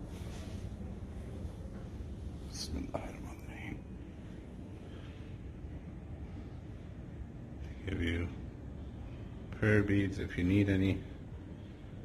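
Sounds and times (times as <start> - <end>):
low room rumble: 0.0 - 12.0
person whispering: 2.4 - 4.3.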